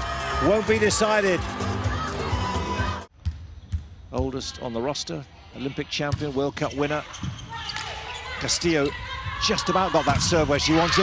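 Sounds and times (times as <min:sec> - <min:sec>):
music: 0:00.0 - 0:03.1
volleyball bouncing on court: 0:03.1 - 0:04.4, 0:10.0 - 0:10.6.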